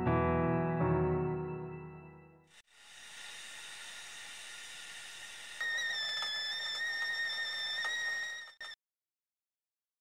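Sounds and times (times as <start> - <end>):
kettle steam hiss: 2.6 - 7.8
kettle whistle: 5.4 - 8.8.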